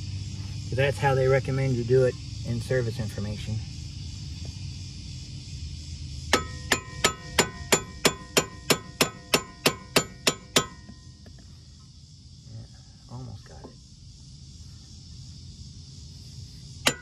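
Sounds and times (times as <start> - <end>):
hammer striking steel: 6.3 - 10.9.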